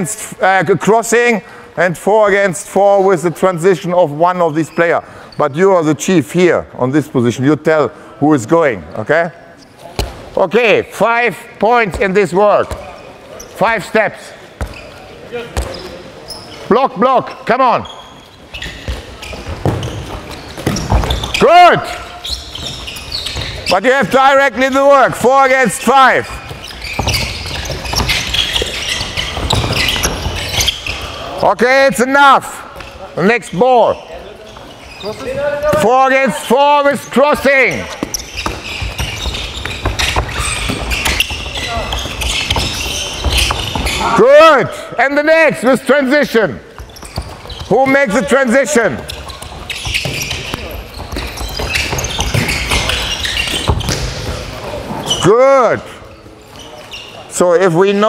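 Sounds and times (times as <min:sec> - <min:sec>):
shoes squeaking on wooden court: 0:02.3 - 0:06.0, 0:08.7 - 0:58.0
ball bouncing on wooden floor: 0:18.8 - 0:21.4, 0:26.4 - 0:30.7, 0:37.9 - 0:44.0, 0:49.1 - 0:54.5.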